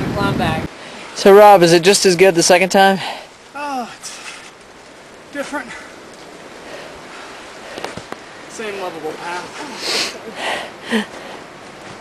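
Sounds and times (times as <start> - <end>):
wind and rain hiss: 0.0 - 12.0.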